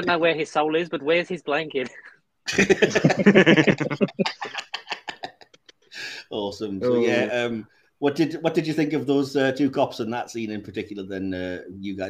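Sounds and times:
people laughing: 0:02.5 - 0:05.7.

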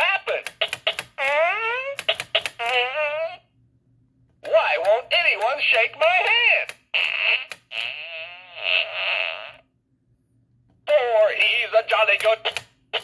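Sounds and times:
novelty toy voice and sound effects: 0:00.0 - 0:03.5, 0:04.4 - 0:09.6, 0:10.8 - 0:13.0.

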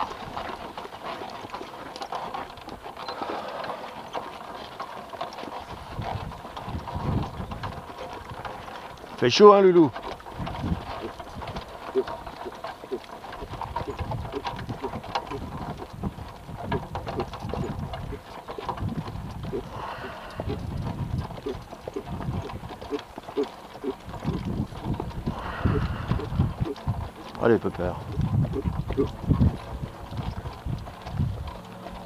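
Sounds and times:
horse hooves clip-clopping on dirt: 0:00.0 - 0:32.0.

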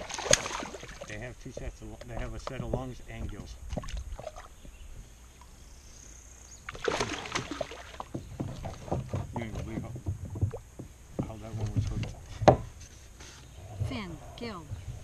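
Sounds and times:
knocks and clatter of gear: 0:08.1 - 0:12.6
voices talking: 0:13.7 - 0:14.9.

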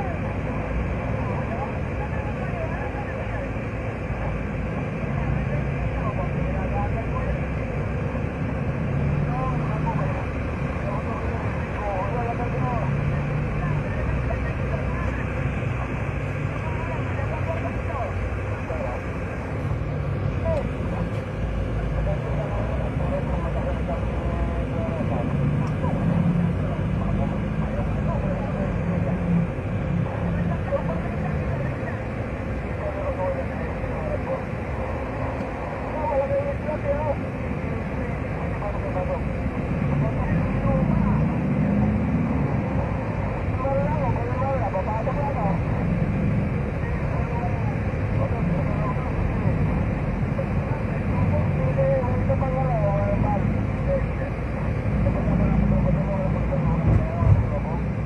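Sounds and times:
engine and road rumble: 0:00.0 - 0:58.0
faint indistinct voices: 0:00.0 - 0:58.0.

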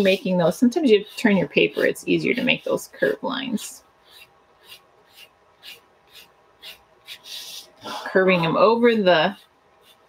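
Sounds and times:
pencil scratching on paper: 0:00.0 - 0:10.0.

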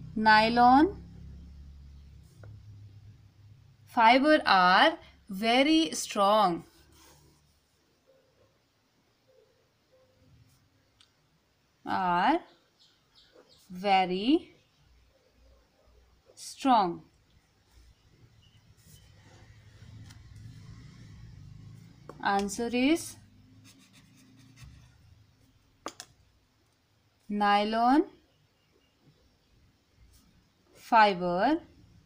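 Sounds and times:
pen scratching on paper: 0:23.6 - 0:25.0.

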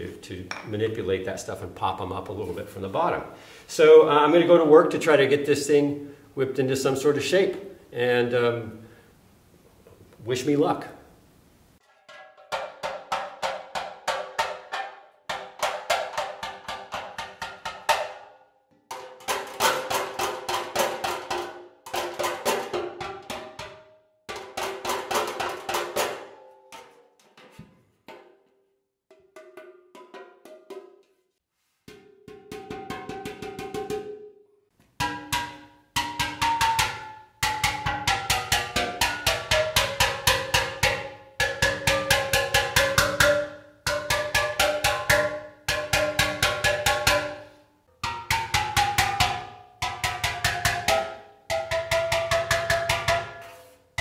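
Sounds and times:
hammer striking steel pan: 0:00.5 - 0:00.8, 0:11.8 - 0:28.4, 0:29.1 - 0:31.2, 0:31.9 - 0:34.4, 0:35.0 - 0:54.0.

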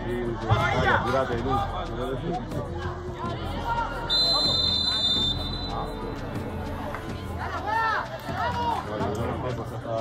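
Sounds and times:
referee's whistle blast: 0:04.1 - 0:05.9.

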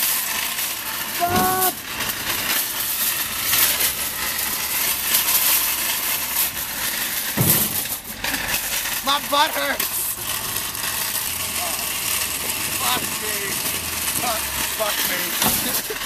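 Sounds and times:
shopping cart rattling on asphalt: 0:00.0 - 0:16.0.

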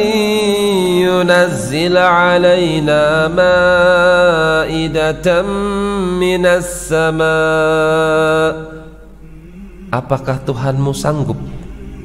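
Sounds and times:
faint background hum: 0:00.0 - 0:12.0
man chanting: 0:00.0 - 0:12.0
man speaking: 0:10.0 - 0:11.6.

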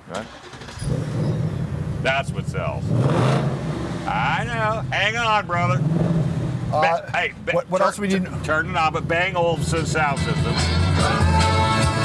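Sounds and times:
car engine starting and idling: 0:00.0 - 0:12.0.

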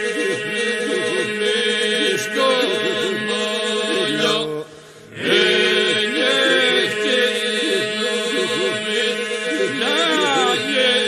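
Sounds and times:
held vocal drone: 0:00.0 - 0:11.0
polyphonic folk singing: 0:00.0 - 0:11.0.

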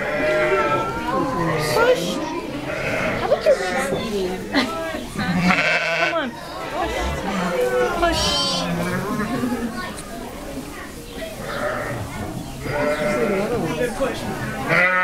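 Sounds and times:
sheep bleating: 0:05.3 - 0:09.5, 0:12.7 - 0:13.6, 0:14.7 - 0:15.0.

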